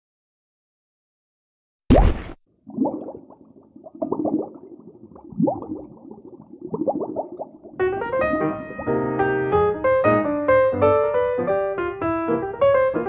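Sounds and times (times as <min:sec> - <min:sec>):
cartoon underwater bubbling: 0:01.9 - 0:09.6
piano music: 0:07.8 - 0:13.0.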